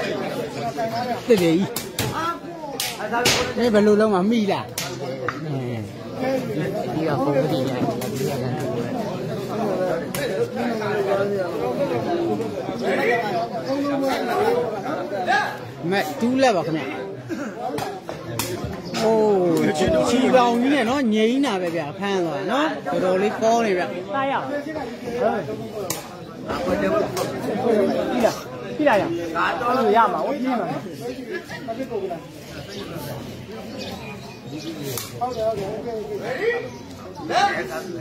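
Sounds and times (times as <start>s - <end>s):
overlapping chatter of people: 0.0s - 38.0s.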